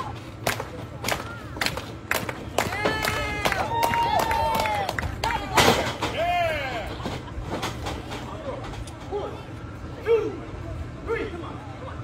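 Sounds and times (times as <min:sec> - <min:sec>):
spectators shouting: 0:01.1 - 0:07.0.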